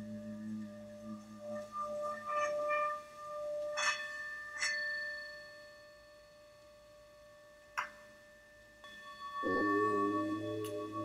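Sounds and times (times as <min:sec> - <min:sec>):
low hum: 0:00.0 - 0:07.7, 0:08.9 - 0:11.0
singing bowl strikes: 0:00.0 - 0:11.0
singing bowl sustained tone: 0:00.0 - 0:11.0.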